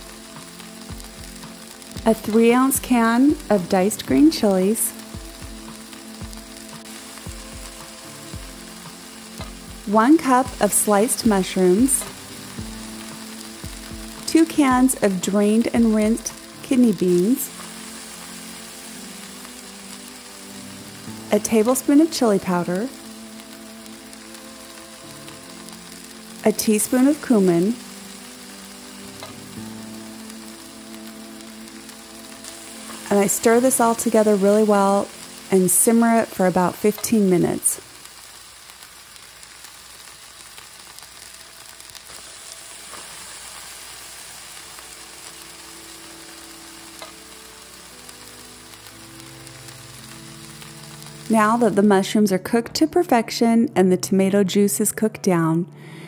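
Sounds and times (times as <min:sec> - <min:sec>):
food sizzling in a skillet: 0:00.0 - 0:56.0
soft background music: 0:00.0 - 0:56.0.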